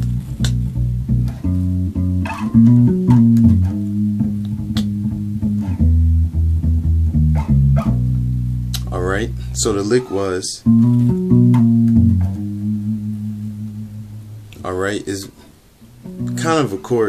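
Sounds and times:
electric bass guitar playing: 0.0s - 14.7s, 15.9s - 16.8s.

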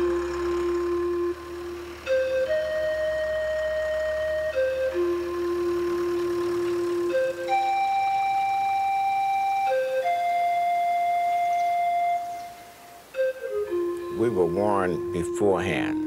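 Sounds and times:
slow solo melody with grace notes: 0.0s - 16.0s.

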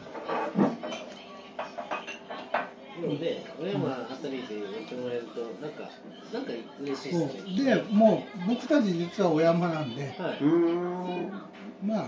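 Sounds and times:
tableware clinking: 0.0s - 2.7s
low voices: 10.3s - 11.8s.

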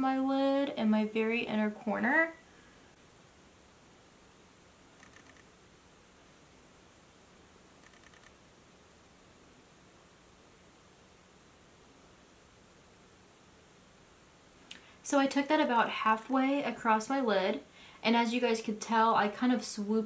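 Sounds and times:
faint room hiss: 0.0s - 20.0s.

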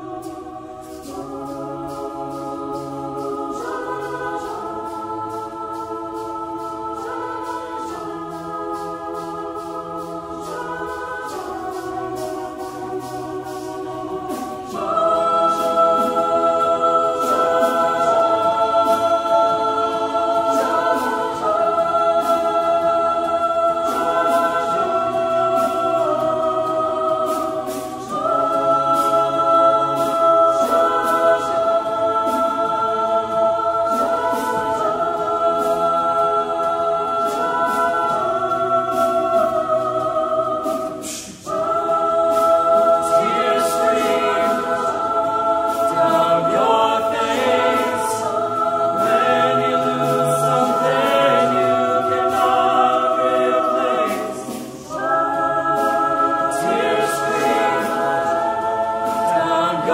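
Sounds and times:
chamber choir singing held chords: 0.0s - 59.9s.

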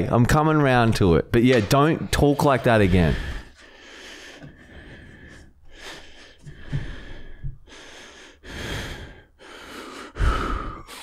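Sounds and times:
man breathing heavily: 2.7s - 11.0s.

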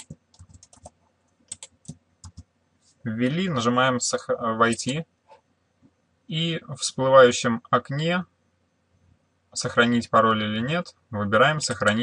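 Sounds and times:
computer keyboard typing: 0.0s - 2.5s, 4.7s - 5.0s.

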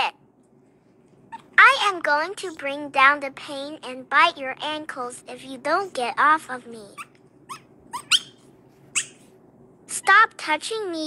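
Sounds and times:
puppy squeaking: 7.0s - 9.3s.

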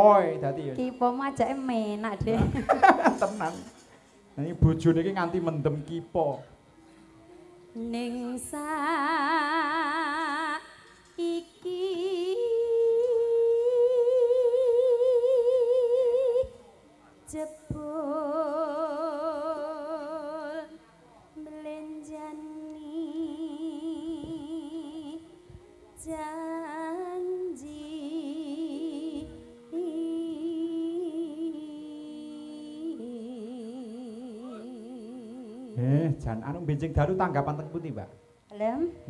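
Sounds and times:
woman singing long note: 7.3s - 16.6s, 17.3s - 20.8s, 21.4s - 36.0s.

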